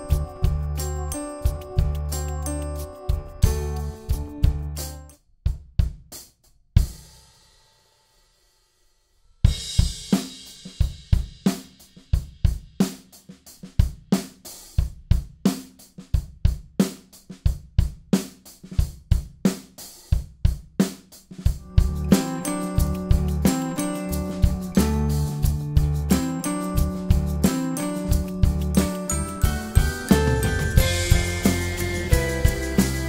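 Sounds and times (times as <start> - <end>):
backing music: 0.0 - 5.1, 21.6 - 33.0
drum kit playing: 0.0 - 7.4, 9.4 - 33.0.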